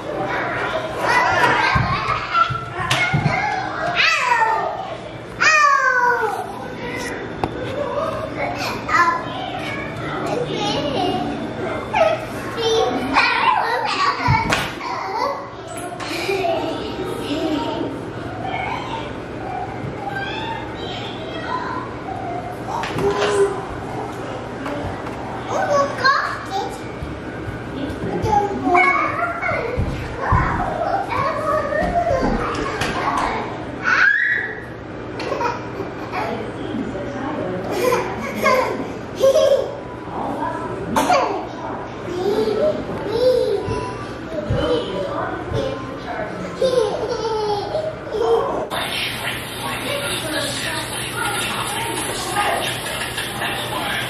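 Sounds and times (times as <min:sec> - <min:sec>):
children squealing: 0:18.4 - 0:22.4, 0:33.8 - 0:34.8.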